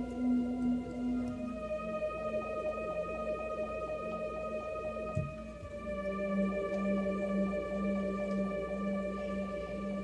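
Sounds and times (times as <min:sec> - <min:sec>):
electronic keyboard: 0:00.0 - 0:10.0.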